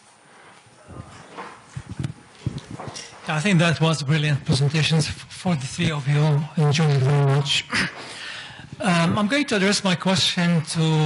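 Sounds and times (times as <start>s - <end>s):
microphone being handled: 0.9s - 3.3s.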